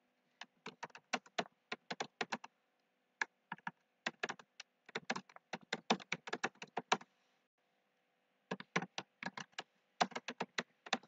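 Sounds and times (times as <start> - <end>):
typing on computer keyboard: 0.6 - 2.5, 3.5 - 7.0, 8.5 - 11.0.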